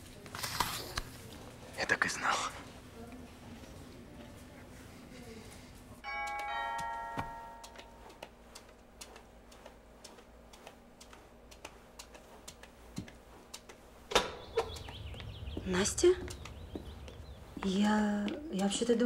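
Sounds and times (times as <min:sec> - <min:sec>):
doorbell chime: 0:06.0 - 0:08.1
footsteps on hard floor: 0:06.3 - 0:18.4.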